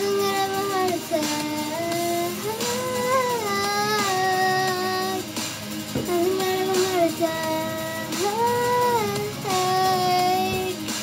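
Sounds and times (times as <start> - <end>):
girl singing pop song: 0.0 - 11.0.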